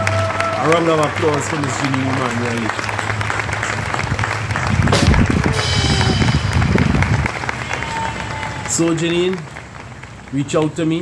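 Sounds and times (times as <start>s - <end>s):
crowd applause: 0.0s - 10.4s
music: 4.9s - 7.4s.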